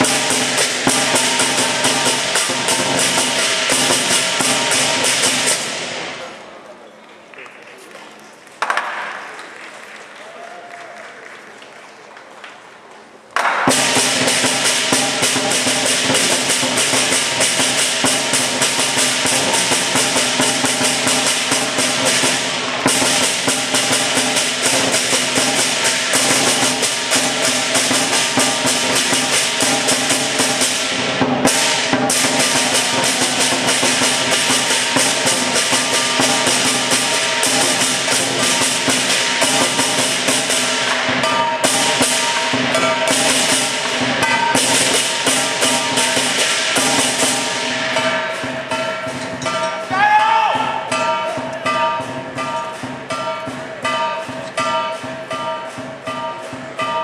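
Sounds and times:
big drum and clashing cymbals: 0.0s - 6.4s, 13.5s - 57.0s.

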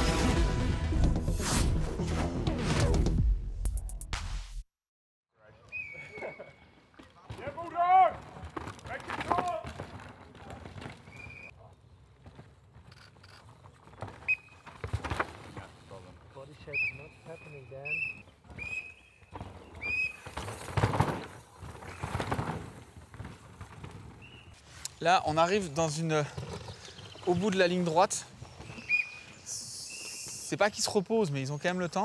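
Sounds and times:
mountain bikes racing past: 13.4s - 24.6s
short high whistle-like tones: 16.6s - 19.2s, 28.8s - 30.5s.

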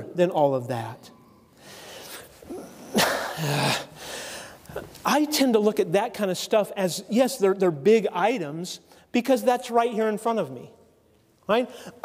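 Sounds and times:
man coughing: 2.5s - 4.0s.

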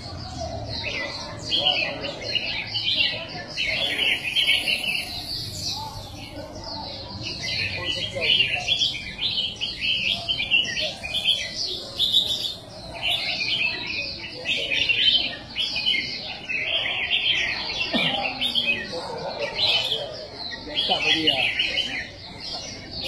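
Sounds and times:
chorus of birds chirping: 0.0s - 23.0s
people murmuring: 0.0s - 23.0s.

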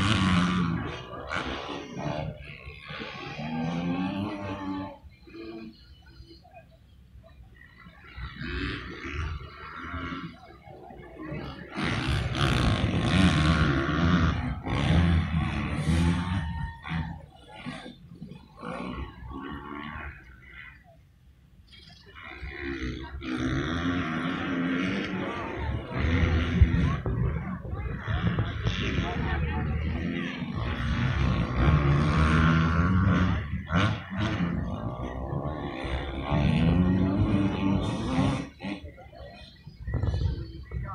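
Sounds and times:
motorcycle engines revving: 0.0s - 40.9s.

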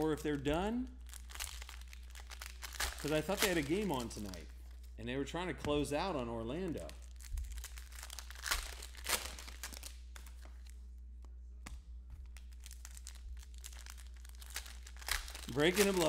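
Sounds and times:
foil wrappers crinkling: 0.0s - 4.9s, 6.7s - 10.7s, 12.4s - 16.0s.

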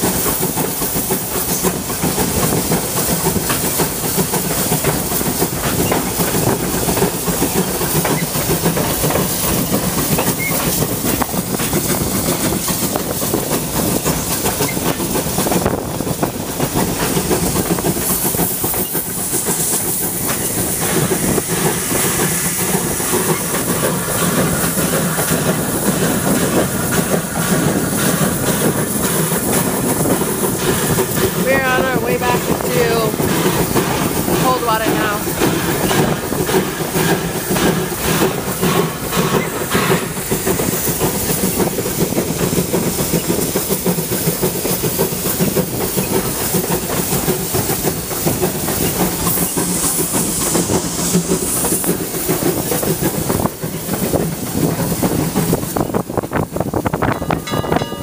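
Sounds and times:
steam hissing: 0.0s - 58.0s
train wheels clicking over rail joints: 0.0s - 58.0s.

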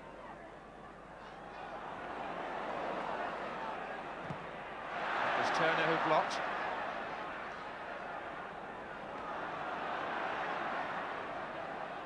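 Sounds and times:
stadium crowd voices: 0.0s - 12.0s.

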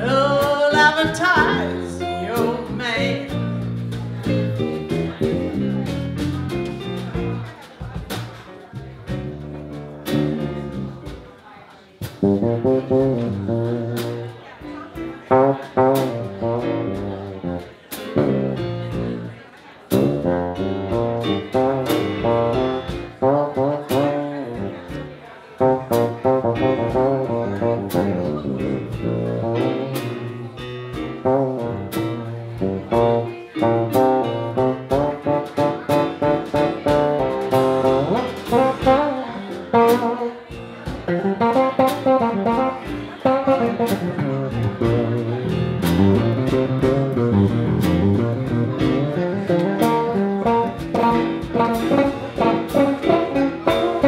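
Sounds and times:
live band playing: 0.0s - 54.0s
drum and cymbal hits: 33.9s - 54.0s.

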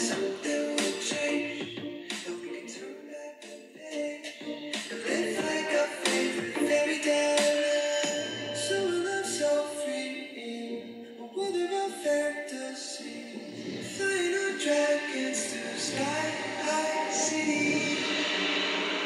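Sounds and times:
pop song with singing: 0.0s - 19.0s.

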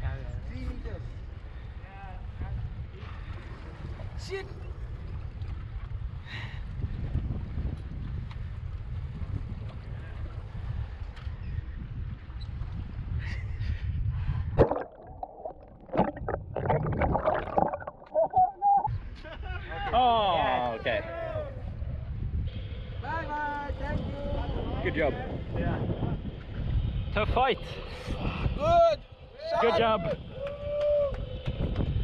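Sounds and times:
wind on microphone: 2.0s - 19.1s, 21.4s - 32.0s
boat engine rumble: 8.4s - 18.9s.

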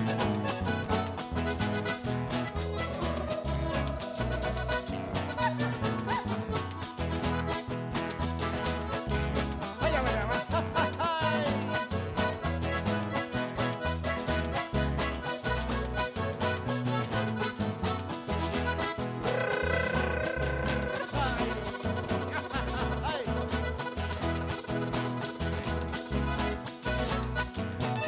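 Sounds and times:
accordion: 0.0s - 28.0s
bass guitar: 0.0s - 28.0s
strummed acoustic guitars: 0.0s - 28.0s.

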